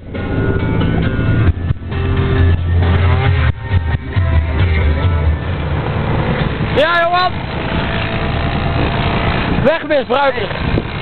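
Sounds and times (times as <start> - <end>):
steady noisy rumble: 0.0 - 11.0.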